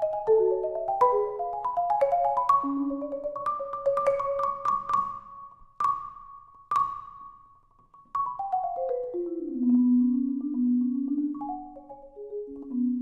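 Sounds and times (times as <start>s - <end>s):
solo marimba notes: 0.0s - 7.2s, 8.1s - 13.0s.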